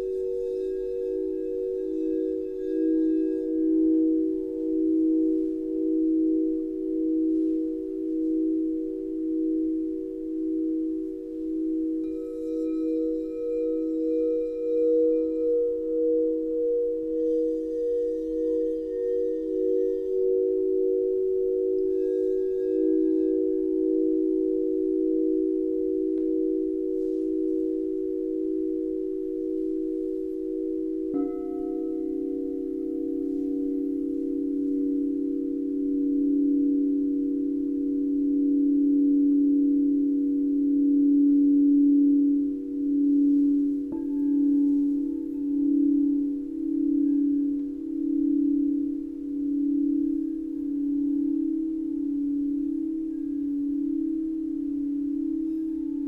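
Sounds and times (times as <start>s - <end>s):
singing bowls ringing: 0.0s - 56.0s
singing bowl struck: 11.6s - 50.2s.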